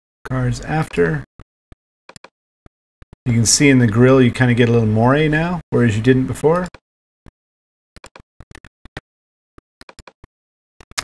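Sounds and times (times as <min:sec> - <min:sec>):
computer mouse clicking: 0:02.1 - 0:02.3, 0:09.8 - 0:10.2.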